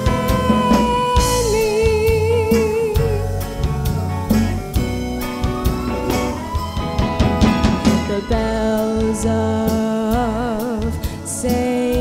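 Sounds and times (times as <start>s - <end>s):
bass guitar: 0.0s - 12.0s
drum kit strokes: 0.0s - 12.0s
keyboard and guitar chords: 0.0s - 12.0s.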